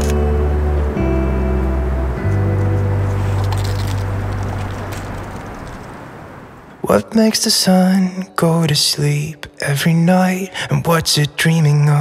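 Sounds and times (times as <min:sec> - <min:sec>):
slow instrumental music: 0:00.0 - 0:06.2.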